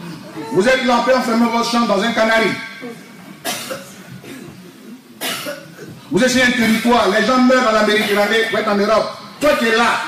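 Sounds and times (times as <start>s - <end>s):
person coughing: 3.4s - 4.6s, 5.2s - 6.1s.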